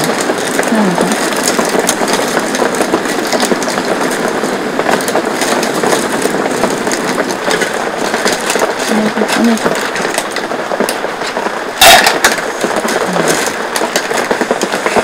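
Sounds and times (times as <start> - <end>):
heavy rain on tent fabric: 0.0 - 15.0.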